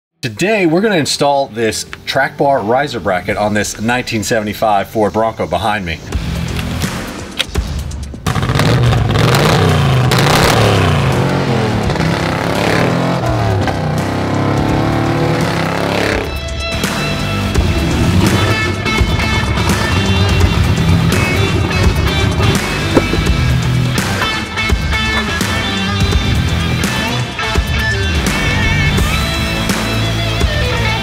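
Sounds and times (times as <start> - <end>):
background music: 0.2 - 31.0
engine revving: 8.2 - 31.0.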